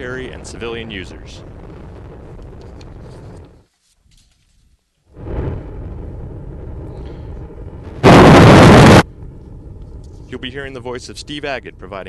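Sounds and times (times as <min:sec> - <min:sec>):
rocket engine rumble: 0:00.0 - 0:03.6, 0:05.1 - 0:12.0.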